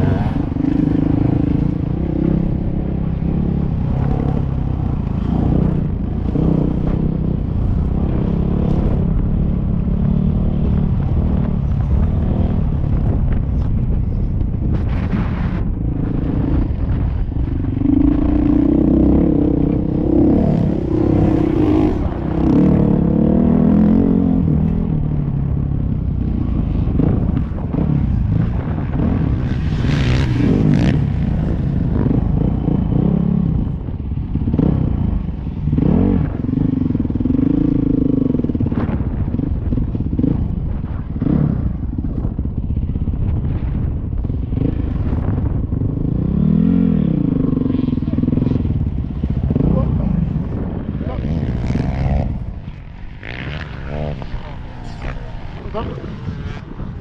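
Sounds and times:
wind noise on microphone: 0.0 - 57.0
dirt bike engine revving: 14.8 - 25.0, 26.2 - 41.7, 46.0 - 57.0.

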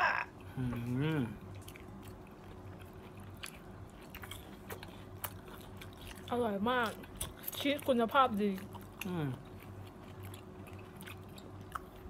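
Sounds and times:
low steady hum: 0.0 - 12.0
chewing mouth sounds: 0.4 - 12.0.

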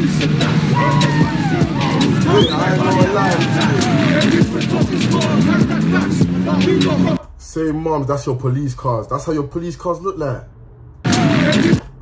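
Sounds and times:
background music: 0.0 - 7.2, 11.1 - 12.0
car engine running: 0.0 - 7.2
crowd shouting: 0.4 - 5.7.

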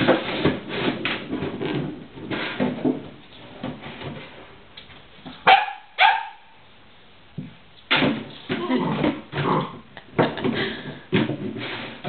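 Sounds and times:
plastic jug scraping on wood floor: 0.0 - 4.6, 10.9 - 12.0
puppy barking: 5.4 - 6.6.

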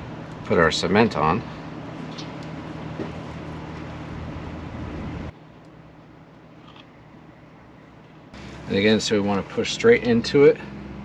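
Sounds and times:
machinery humming: 0.0 - 5.3, 6.9 - 11.0.

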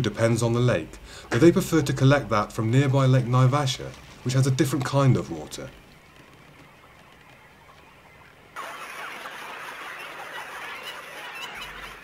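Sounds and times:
cormorant colony calling: 5.1 - 12.0.

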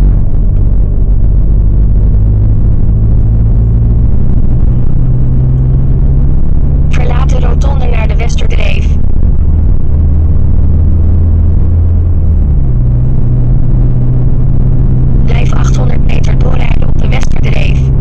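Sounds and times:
car engine drone: 0.0 - 18.0
road noise inside car: 0.0 - 18.0.

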